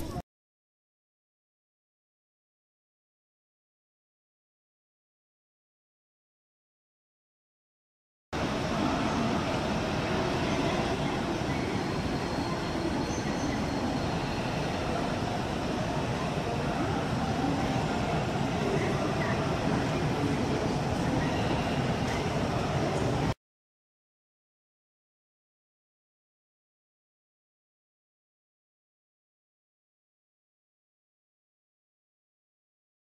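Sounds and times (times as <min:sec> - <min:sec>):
crowd noise: 0:00.0 - 0:00.2, 0:08.4 - 0:23.4
train sounds: 0:08.4 - 0:23.4.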